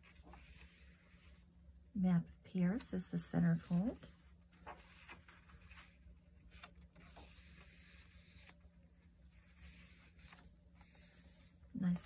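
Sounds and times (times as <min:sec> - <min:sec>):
low steady hum: 0:00.0 - 0:12.0
paper page turning: 0:03.6 - 0:11.6.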